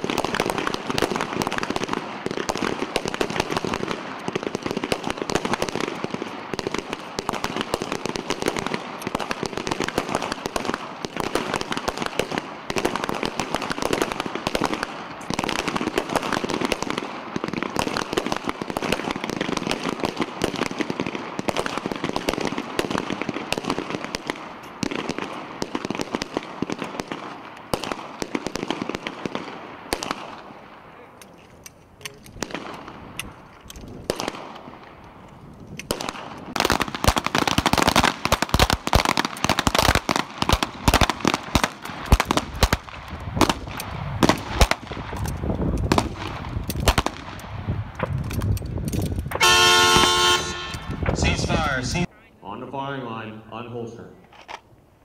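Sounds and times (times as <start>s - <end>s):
pistol gunfire: 0.0s - 30.7s, 32.3s - 33.3s, 33.9s - 35.0s, 35.8s - 48.2s.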